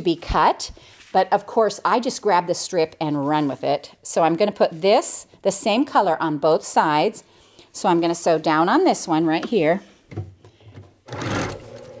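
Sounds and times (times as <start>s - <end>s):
electric sewing machine stitching: 11.1s - 12.0s.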